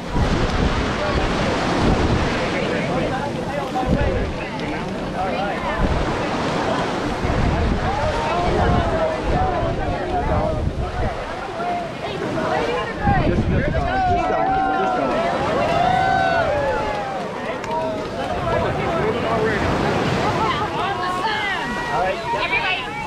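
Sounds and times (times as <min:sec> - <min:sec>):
crowd talking and calling out: 0:00.0 - 0:23.0
wind buffeting microphone: 0:00.0 - 0:23.0.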